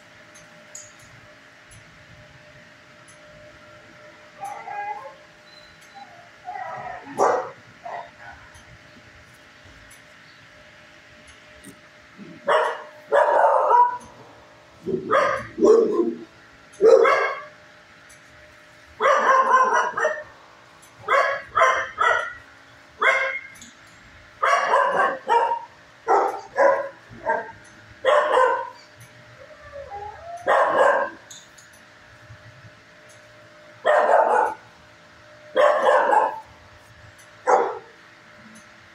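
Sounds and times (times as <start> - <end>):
dog barking: 6.6 - 8.4, 12.4 - 14.1, 14.9 - 16.2, 16.8 - 17.5, 19.0 - 20.3, 21.1 - 22.4, 23.0 - 23.5, 24.4 - 28.8, 30.4 - 31.2, 33.8 - 34.6, 35.6 - 36.5, 37.5 - 37.9.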